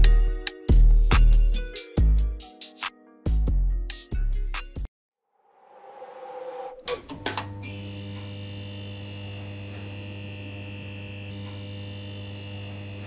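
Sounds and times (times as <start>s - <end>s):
thin high buzz: 7.6s - 13.0s.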